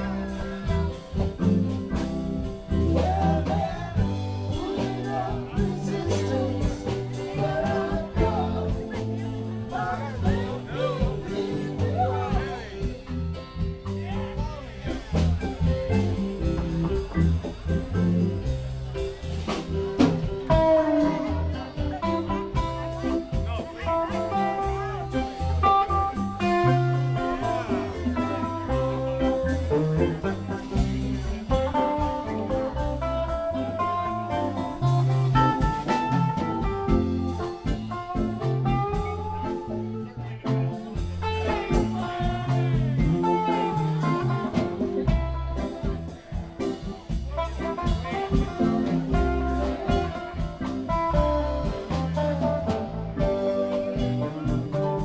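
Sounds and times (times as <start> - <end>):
bass notes: 0.0 - 55.0
drum kit: 0.0 - 55.0
electric guitar: 0.0 - 55.0
electric keyboard: 0.0 - 55.0.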